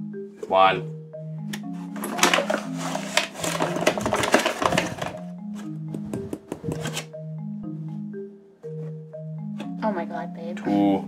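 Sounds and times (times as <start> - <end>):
soft marimba music: 0.0 - 3.9, 5.1 - 11.0.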